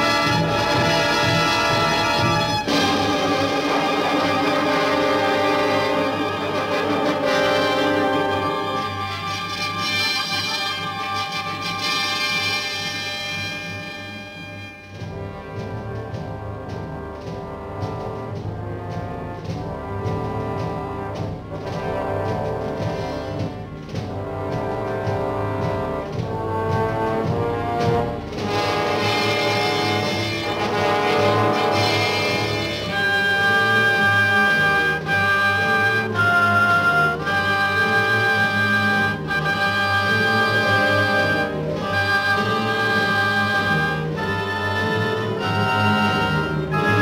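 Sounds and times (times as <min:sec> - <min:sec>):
orchestral music with brass: 0:00.0 - 0:47.0.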